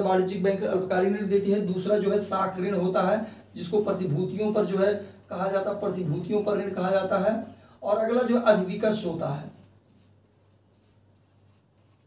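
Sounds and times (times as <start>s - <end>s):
marker scratching on whiteboard: 0.2s - 7.2s, 8.3s - 12.0s.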